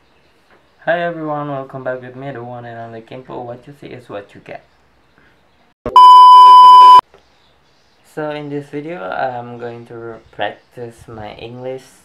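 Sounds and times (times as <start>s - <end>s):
high test-tone beep: 5.9s - 7.0s.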